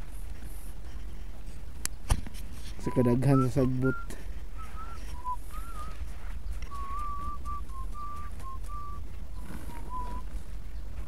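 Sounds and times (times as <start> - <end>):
person whistling a slow tune: 2.8 - 6.0, 6.7 - 9.0, 9.6 - 10.3.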